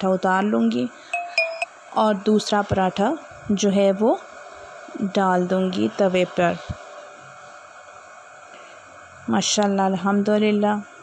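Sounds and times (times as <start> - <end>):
hot griddle hissing: 2.3 - 9.4.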